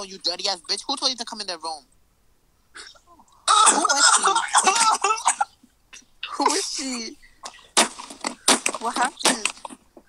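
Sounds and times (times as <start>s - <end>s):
person's distorted vocal outburst: 2.8s - 5.4s.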